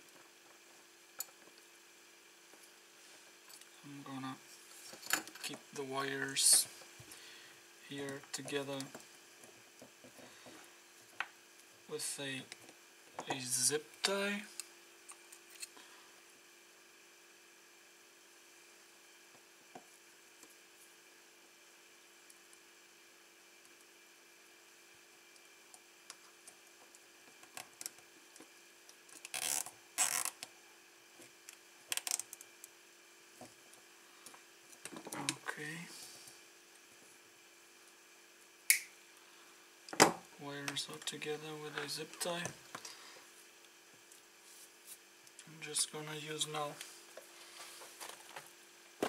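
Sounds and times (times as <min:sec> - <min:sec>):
faint steady hum: 0:00.0 - 0:49.0
zip tie rasping and clicking: 0:29.2 - 0:30.4.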